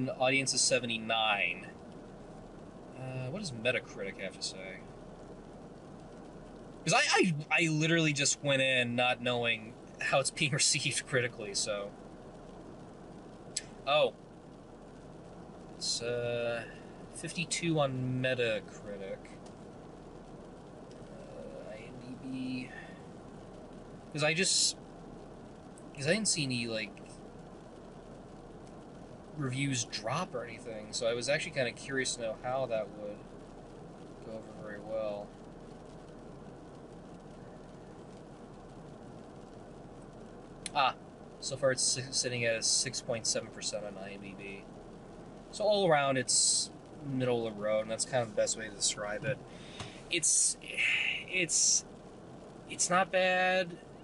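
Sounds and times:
man speaking: 0.0s - 1.7s, 3.0s - 4.8s, 6.9s - 11.9s, 13.8s - 14.1s, 15.8s - 19.3s, 21.1s - 22.9s, 24.2s - 24.7s, 26.0s - 26.9s, 29.4s - 33.2s, 34.3s - 35.3s, 40.7s - 44.6s, 45.5s - 49.4s, 50.1s - 51.8s, 52.7s - 53.8s
car engine idling: 0.0s - 54.0s.

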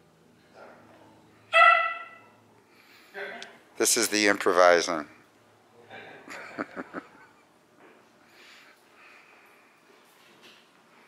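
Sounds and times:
dog barking: 1.5s - 2.4s.

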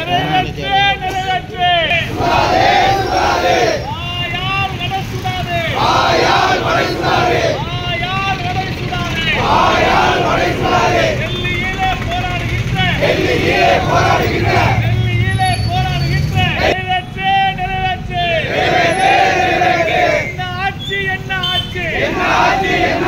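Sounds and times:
person shouting slogans: 0.0s - 2.4s
crowd shouting back: 0.0s - 4.0s, 4.6s - 15.0s, 18.3s - 20.4s, 21.8s - 23.0s.

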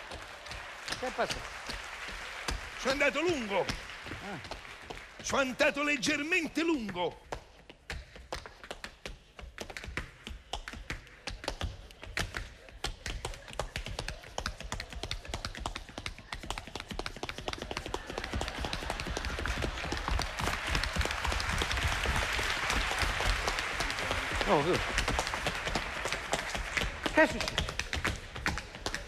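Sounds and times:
audience applause: 0.0s - 6.6s, 15.2s - 29.0s
tap shoes on stage floor: 0.0s - 29.0s.

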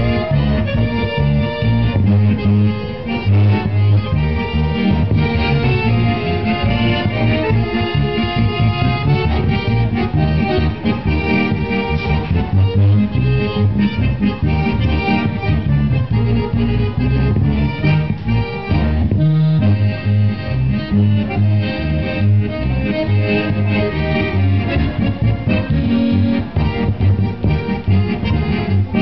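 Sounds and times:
accordion playing tune: 0.0s - 29.0s.

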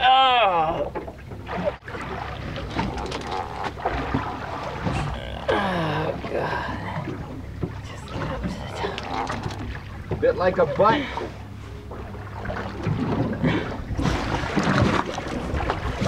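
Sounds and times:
fishing boat hum: 0.0s - 16.0s
water noise: 0.0s - 16.0s
wind: 0.0s - 16.0s.

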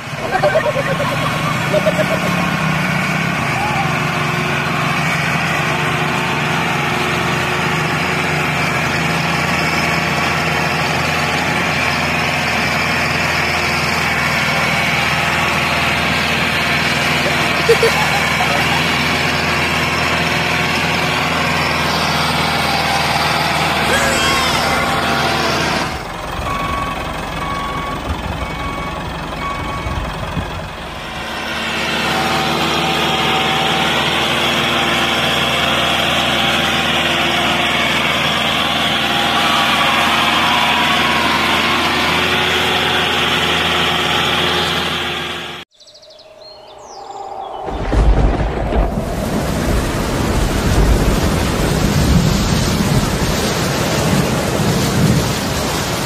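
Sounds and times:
small tractor engine running: 0.0s - 45.6s
rushing noise with low rumble: 46.2s - 56.0s.

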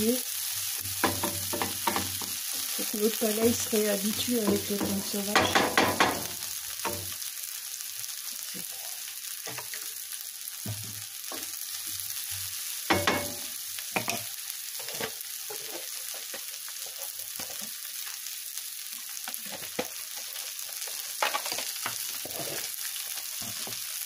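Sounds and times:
vegetables sizzling in frying pan: 0.0s - 24.0s.

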